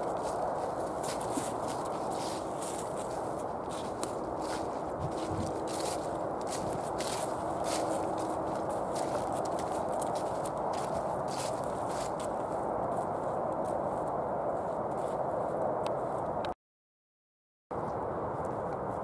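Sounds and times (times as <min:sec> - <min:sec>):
footsteps through dry leaves: 0:00.0 - 0:14.0
steady background rush: 0:00.0 - 0:16.4.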